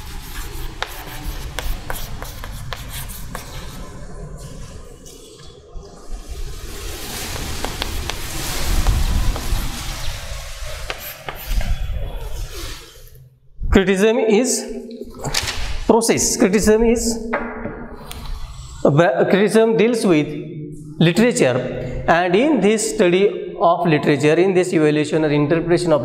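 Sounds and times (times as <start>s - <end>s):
chalk tapping on chalkboard: 0.0s - 3.8s, 7.1s - 11.7s
chalk scratching on chalkboard: 0.0s - 4.0s, 7.1s - 12.8s.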